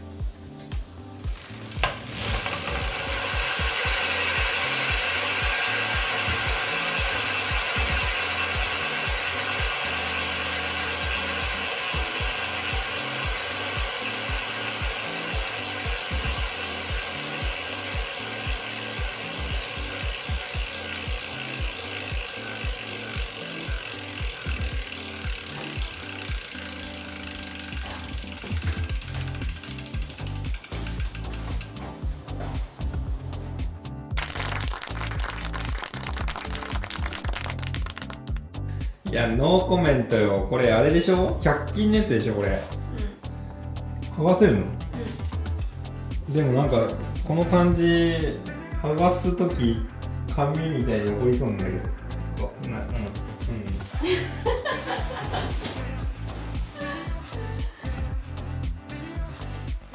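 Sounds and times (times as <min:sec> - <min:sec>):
bicycle freewheel ratcheting buzz: 0:00.0 - 0:59.9.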